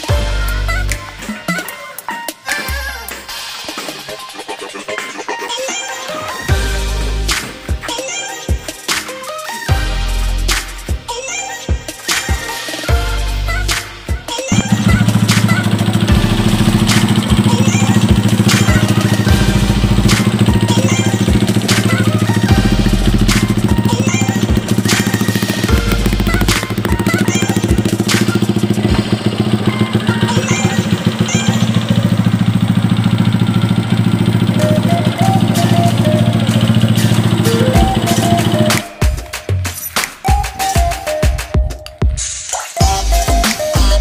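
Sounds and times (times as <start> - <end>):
background music with steady beat: 0.0 - 44.0
motorcycle engine running steadily: 14.5 - 38.9.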